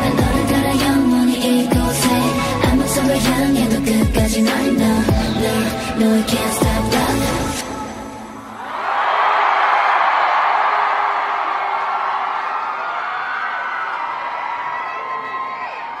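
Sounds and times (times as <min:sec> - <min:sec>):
audience cheering and screaming: 0:08.4 - 0:16.0.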